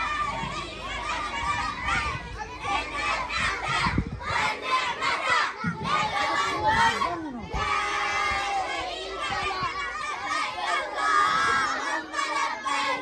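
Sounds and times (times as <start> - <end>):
crowd of children shouting: 0.0 - 13.0.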